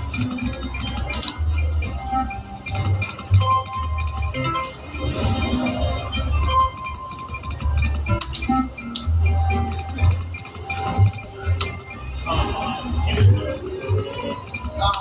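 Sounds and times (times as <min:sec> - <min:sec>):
slot machine game music: 0:00.0 - 0:15.0.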